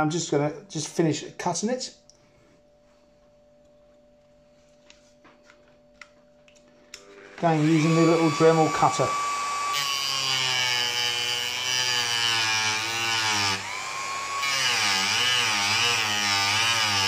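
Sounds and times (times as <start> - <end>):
rotary tool cutting wood: 7.2 - 17.0.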